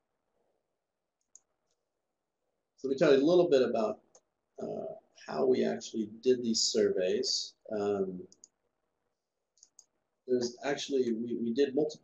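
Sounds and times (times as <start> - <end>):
faint computer clicks: 9.5 - 10.6.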